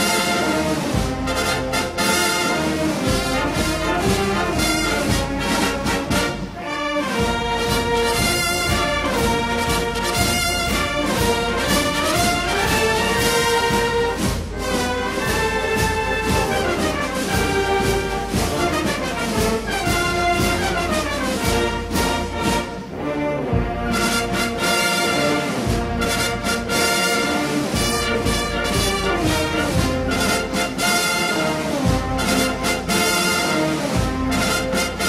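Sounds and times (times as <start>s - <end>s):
orchestral music with brass: 0.0s - 35.0s.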